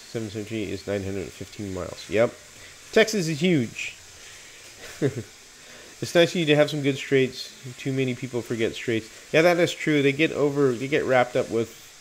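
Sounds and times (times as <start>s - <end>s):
faint hiss: 0.0s - 12.0s
man laughing: 4.8s - 5.4s.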